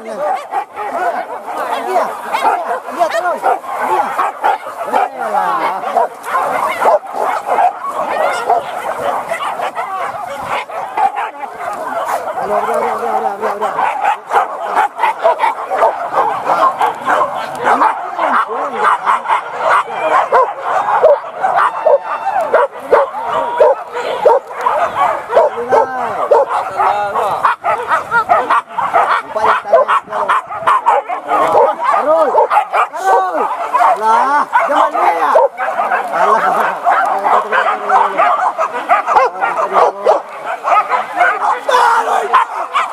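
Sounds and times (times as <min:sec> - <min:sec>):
dogs yelping and baying: 0:00.0 - 0:42.9.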